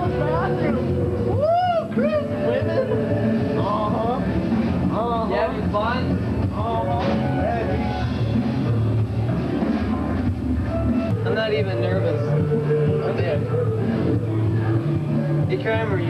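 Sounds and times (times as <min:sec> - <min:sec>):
rock music: 0:00.0 - 0:16.0
voices: 0:00.0 - 0:16.0.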